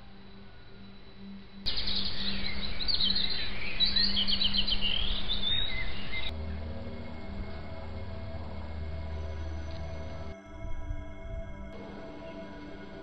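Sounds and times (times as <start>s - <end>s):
songbirds chirping and trilling: 0.0s - 10.7s.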